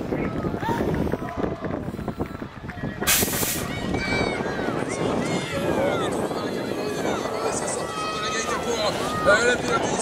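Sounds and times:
crowd chatter and calls: 0:00.0 - 0:10.0.

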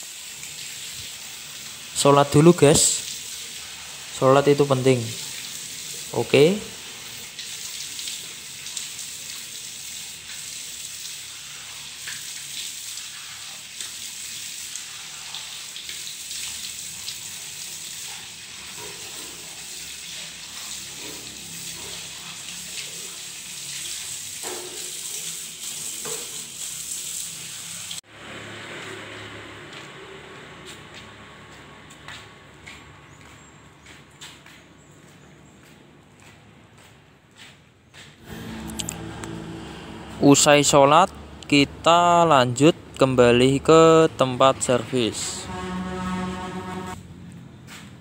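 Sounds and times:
tap water splashing: 0:06.8 - 0:27.6.

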